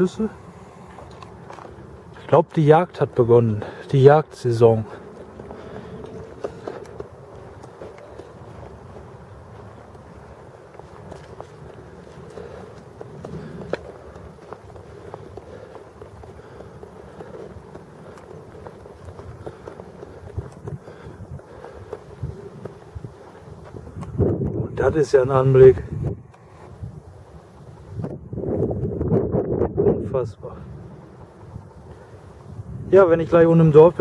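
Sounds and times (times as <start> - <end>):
footsteps on grass and dirt path: 0.0 - 29.0.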